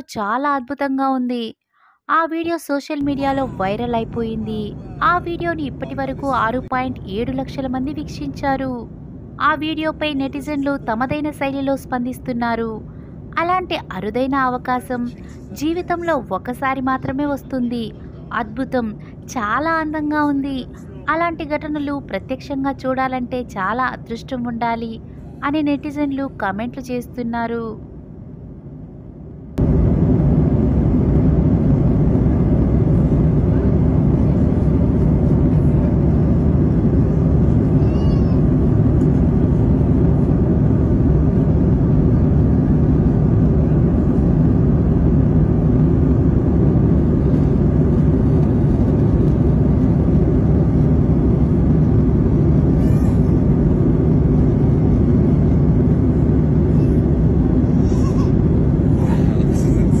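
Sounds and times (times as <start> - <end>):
airliner cabin roar: 3.0 - 27.0, 27.6 - 60.0.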